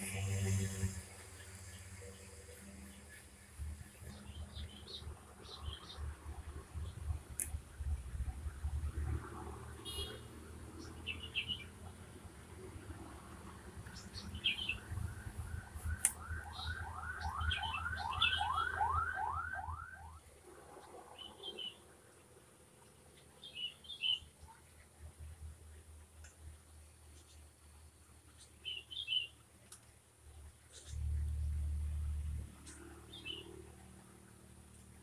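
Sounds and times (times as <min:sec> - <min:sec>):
small birds chirping: 0:00.0 - 0:08.4, 0:09.8 - 0:12.0, 0:13.8 - 0:15.0, 0:15.9 - 0:18.7, 0:20.8 - 0:25.2, 0:25.8 - 0:34.1.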